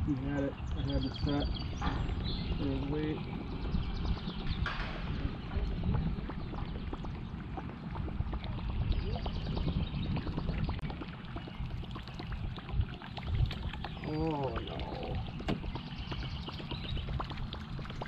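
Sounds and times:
water lapping against boat hull: 0.0s - 18.0s.

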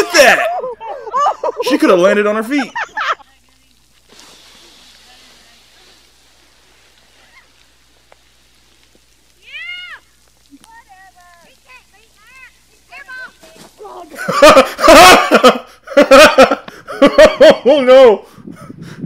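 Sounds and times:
faint hiss: 0.0s - 18.5s.

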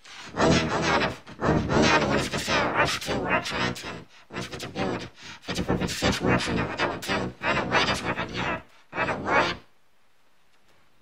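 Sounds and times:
person talking: 0.0s - 9.7s.

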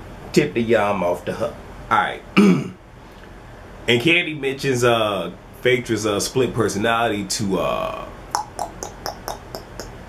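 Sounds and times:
speech: 0.3s - 2.8s, 3.9s - 9.9s.

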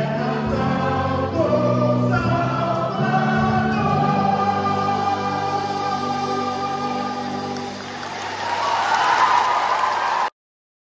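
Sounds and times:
choir singing: 0.0s - 9.3s
audience applause: 7.2s - 10.4s.

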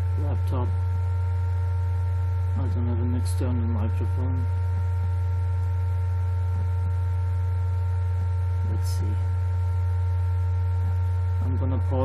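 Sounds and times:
laptop cooling fan hum: 0.0s - 12.0s.

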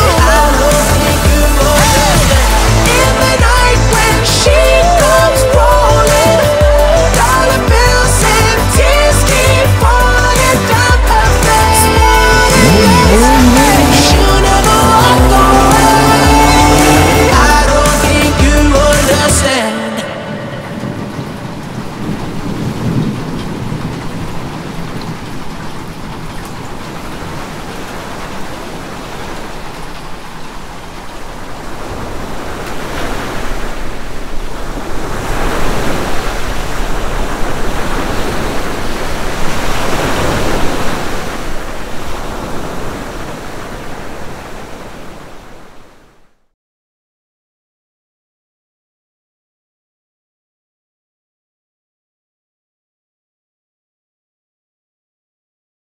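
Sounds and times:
heavy rain: 0.0s - 46.4s
low rumble of thunder: 20.6s - 26.8s.

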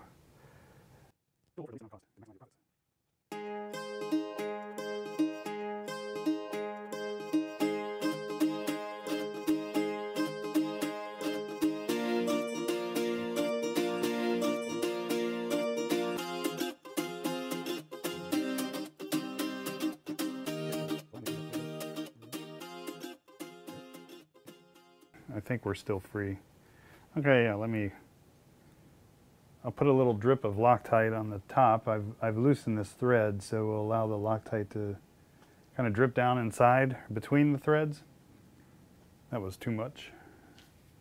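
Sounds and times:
plucked string instrument music: 3.3s - 25.2s.

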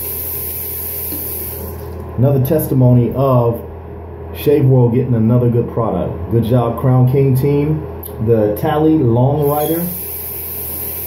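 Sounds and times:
steady hissing: 9.4s - 11.0s.

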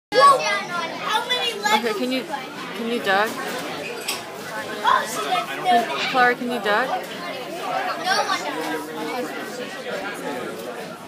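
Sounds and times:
children talking: 0.1s - 11.0s.

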